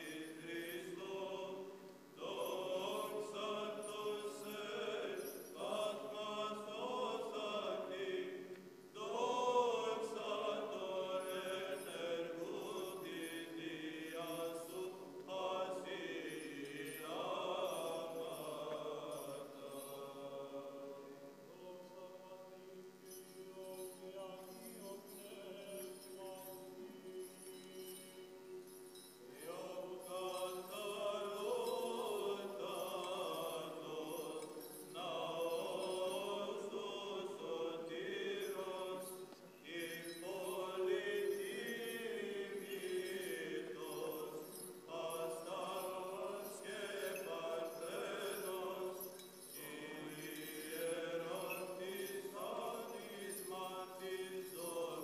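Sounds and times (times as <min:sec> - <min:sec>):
voices chanting: 0:00.0 - 0:21.0, 0:28.6 - 0:55.0.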